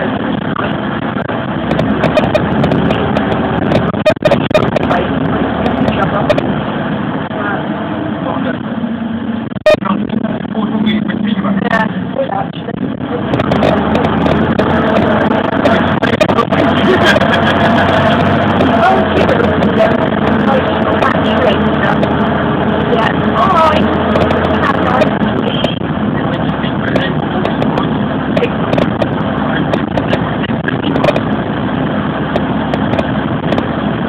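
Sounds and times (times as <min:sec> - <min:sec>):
bus engine and road drone: 0:00.0 - 0:34.0
indistinct voices murmuring: 0:01.7 - 0:31.3.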